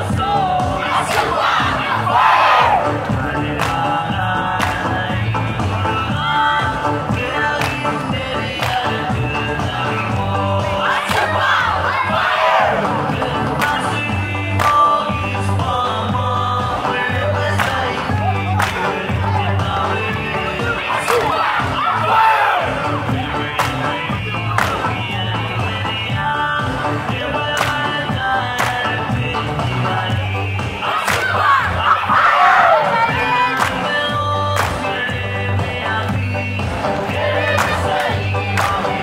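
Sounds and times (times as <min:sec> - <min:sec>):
music with steady beat: 0:00.0 - 0:39.0
voices chanting and singing: 0:00.0 - 0:39.0
sharp clap-like strikes: 0:31.0 - 0:31.3.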